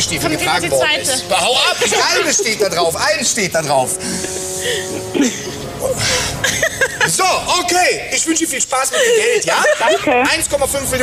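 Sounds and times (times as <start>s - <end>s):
buzzy electronic chord: 0.0s - 8.4s.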